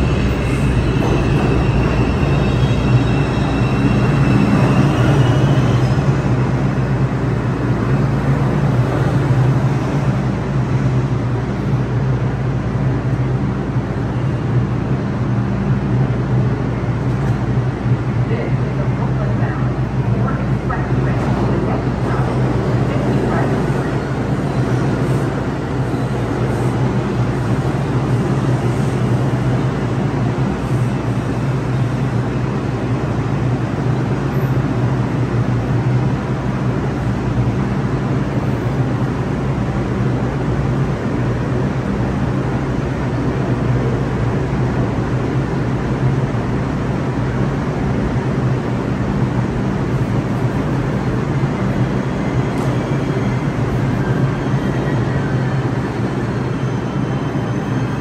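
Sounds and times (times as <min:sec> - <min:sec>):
train brake and wheel squeal: 0:00.0 - 0:06.1, 0:52.2 - 0:58.0
train equipment hum and rumble: 0:00.0 - 0:58.0.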